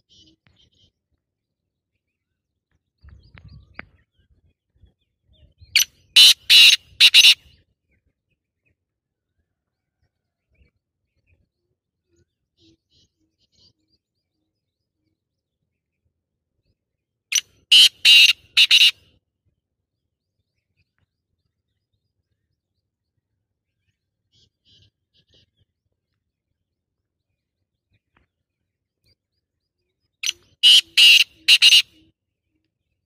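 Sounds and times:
francolin calling harshly: 0:05.8 - 0:07.4, 0:17.3 - 0:18.9, 0:30.2 - 0:32.0.

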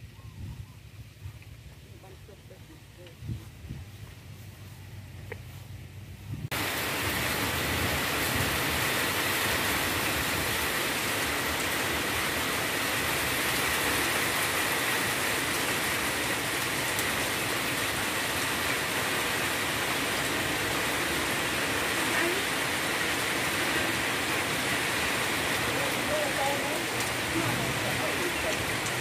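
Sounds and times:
heavy rain falling: 0:06.5 - 0:29.0.

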